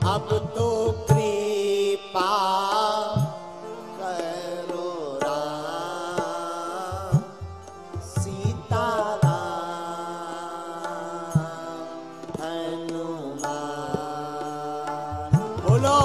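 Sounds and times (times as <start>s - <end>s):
instrumental accompaniment: 0.0s - 16.0s
man singing devotional song: 0.0s - 16.0s
tabla strokes: 10.8s - 16.0s.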